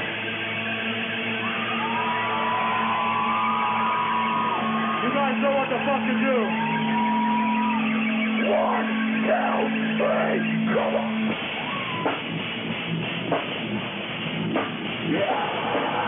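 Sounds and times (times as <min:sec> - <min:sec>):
low droning guitar notes: 0:00.0 - 0:16.0
high whining bending tones: 0:01.2 - 0:16.0
shouted yells: 0:01.4 - 0:12.2.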